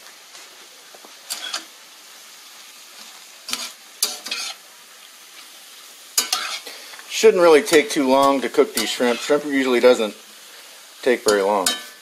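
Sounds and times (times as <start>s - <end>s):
shrimp sizzling in a skillet: 0.0s - 12.0s
utensil scraping a skillet: 1.3s - 1.8s, 2.9s - 4.7s, 6.2s - 12.0s.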